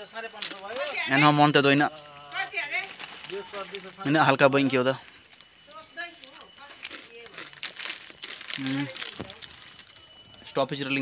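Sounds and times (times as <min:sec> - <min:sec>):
potato chips crunching: 0:06.1 - 0:10.1.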